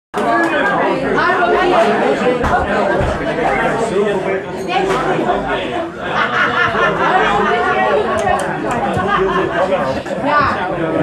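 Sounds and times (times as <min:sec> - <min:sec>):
people talking at once: 0:00.2 - 0:11.0.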